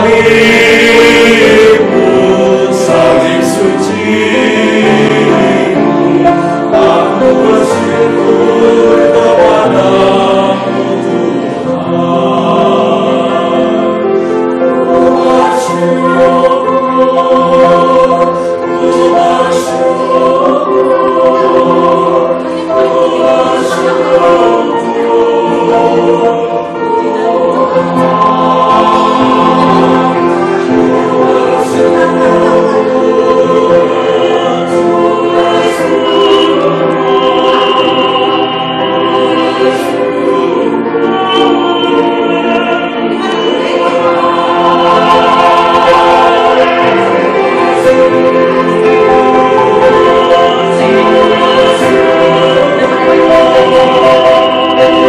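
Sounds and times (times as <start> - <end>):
mixed choir singing: 0.0 - 55.0
piano accompaniment: 0.0 - 55.0.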